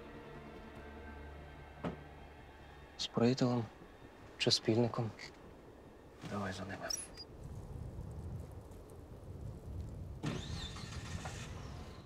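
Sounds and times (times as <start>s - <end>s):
car engine starting and running: 10.2s - 12.0s.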